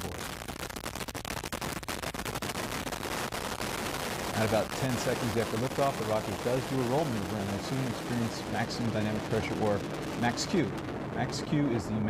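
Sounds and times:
rocket engines roaring with crackles: 0.0 - 12.0.

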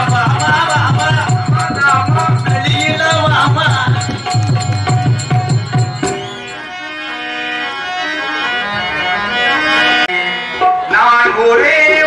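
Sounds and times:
harmonium melody: 0.0 - 12.0.

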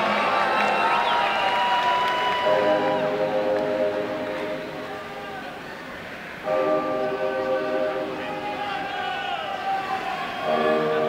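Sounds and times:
horn blast over sound system: 2.4 - 5.7, 6.4 - 11.0.

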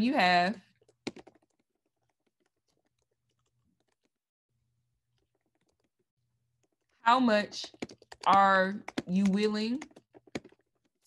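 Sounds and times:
typing on computer keyboard: 0.8 - 4.1, 7.5 - 10.6.

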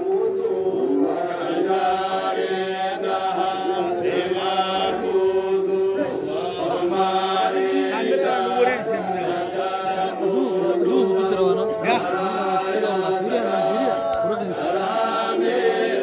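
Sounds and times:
men chanting in unison: 0.4 - 16.0.

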